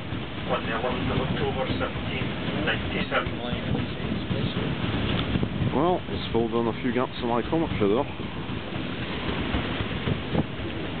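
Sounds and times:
steamship running noise: 0.0s - 11.0s
wind buffeting microphone: 0.0s - 11.0s.

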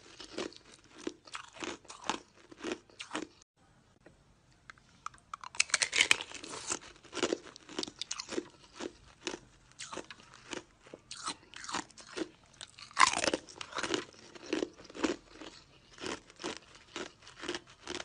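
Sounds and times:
crunching chews of ice: 0.0s - 3.4s, 5.1s - 18.0s.

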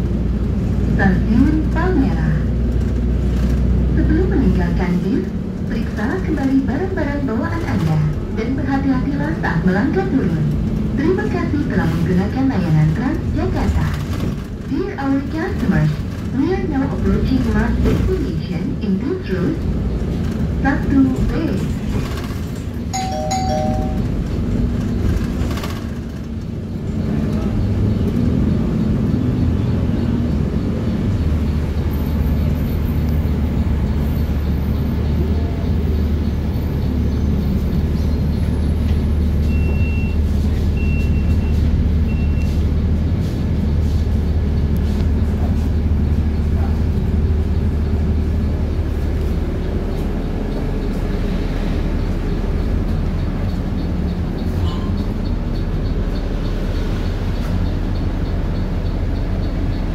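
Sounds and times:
bus engine and road noise: 0.0s - 59.9s
low engine hum: 0.0s - 59.9s
short high beeps: 23.0s - 24.2s
two-note chime: 23.0s - 24.2s.

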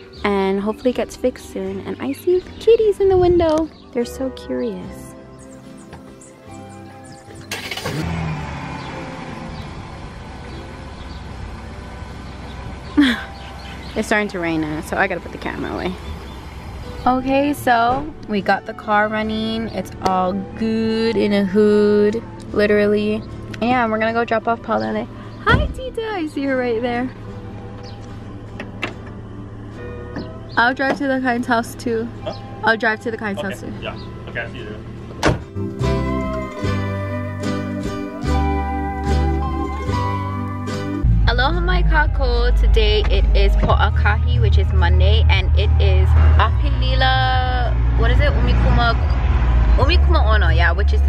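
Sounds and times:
background music: 0.0s - 51.0s
car engine starting and running: 5.4s - 51.0s.

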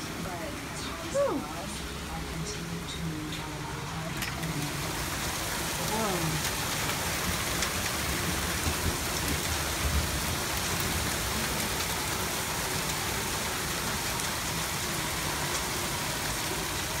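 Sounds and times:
heavy rain pouring: 0.0s - 17.0s.

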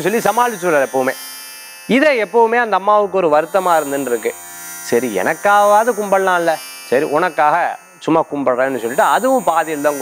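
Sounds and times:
man telling a story: 0.0s - 1.2s, 1.9s - 10.0s.

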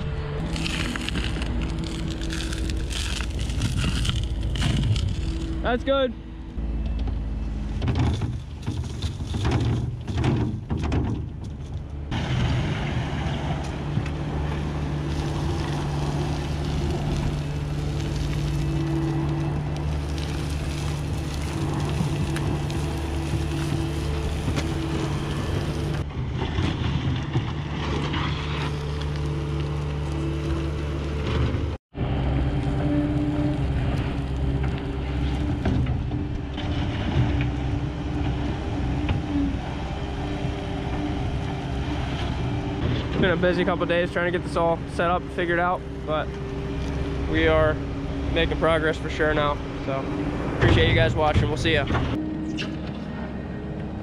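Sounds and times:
diesel engine under load: 0.0s - 54.0s
dirt spilling from bucket: 15.0s - 26.0s.

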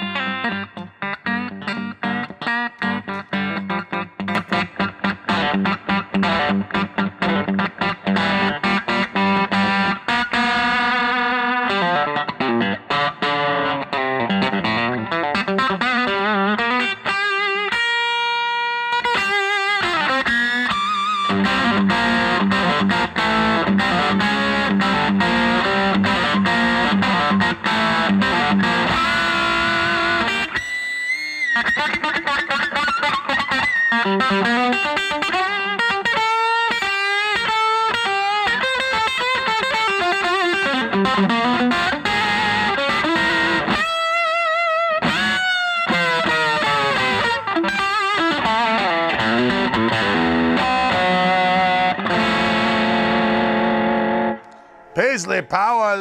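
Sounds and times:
overdriven electric guitar lead: 0.0s - 56.0s.

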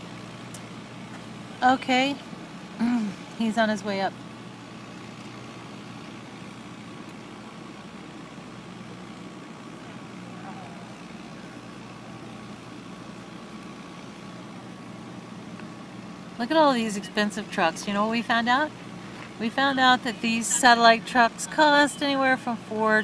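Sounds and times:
trucks idling hum: 0.0s - 23.0s.

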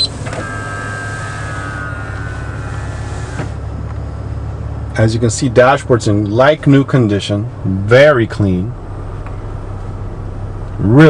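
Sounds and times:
motorised screen whirring: 0.0s - 4.2s.

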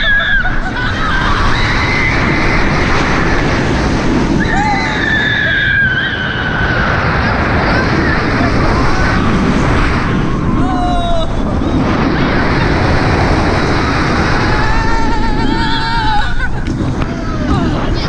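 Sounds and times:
roller coaster riders screaming: 0.0s - 18.0s
wind blasting microphone: 0.0s - 18.0s.

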